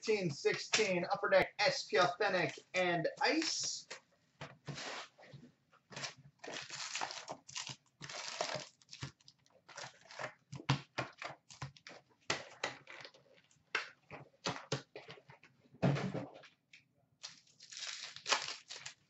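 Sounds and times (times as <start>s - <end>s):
cardboard tearing: 6.0s - 10.3s
wrapper crinkling and rustling: 6.0s - 10.4s, 17.2s - 19.0s.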